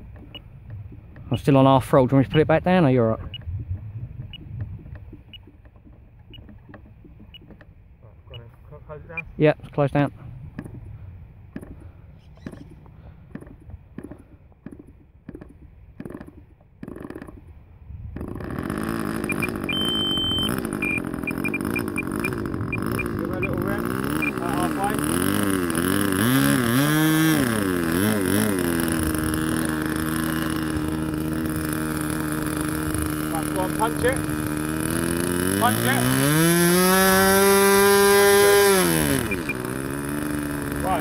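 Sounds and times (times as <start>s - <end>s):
small model engine running: 18.2s - 41.0s.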